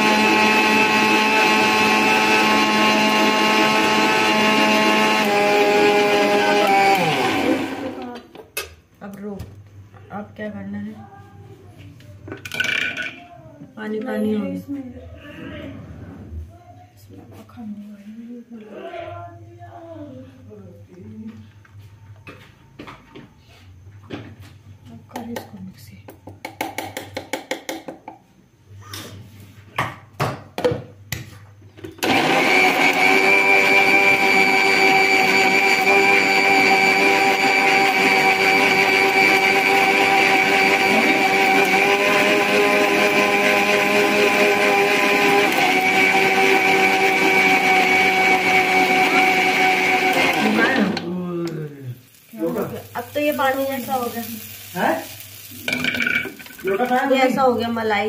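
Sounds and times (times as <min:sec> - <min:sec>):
mixer grinder whining: 0:00.0 - 0:08.2, 0:32.0 - 0:51.3.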